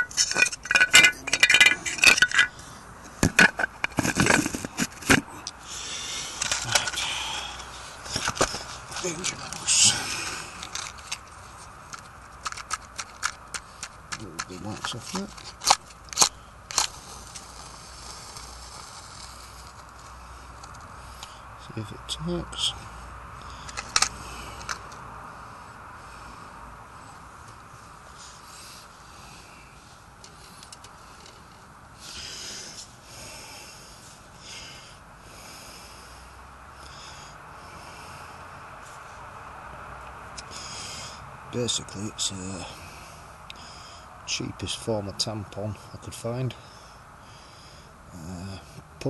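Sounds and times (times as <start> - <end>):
person breathing close to microphone: 5.2 - 8.9, 40.4 - 41.3.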